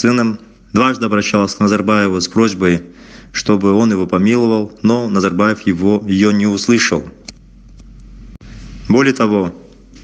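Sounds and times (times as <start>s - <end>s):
man speaking: 0.0s - 7.3s, 8.8s - 9.9s
recording hum and hiss: 0.0s - 10.0s.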